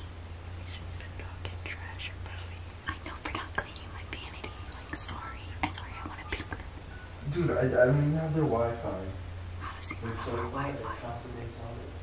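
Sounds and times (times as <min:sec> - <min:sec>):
steady low hum: 0:00.0 - 0:12.0
people whispering: 0:00.6 - 0:06.9, 0:09.6 - 0:11.8.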